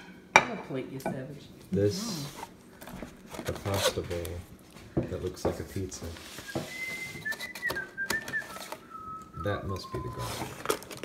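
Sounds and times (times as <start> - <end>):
person whistling: 6.4 - 10.6.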